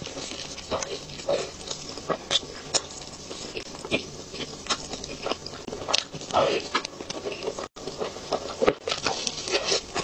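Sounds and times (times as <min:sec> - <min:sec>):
wet chewing and mouth clicks: 0:00.0 - 0:10.0.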